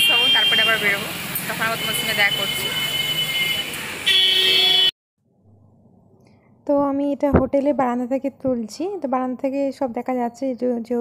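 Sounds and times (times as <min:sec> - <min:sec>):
vehicle horn blast: 0:00.0 - 0:01.0, 0:01.6 - 0:04.9
street traffic: 0:00.0 - 0:04.9.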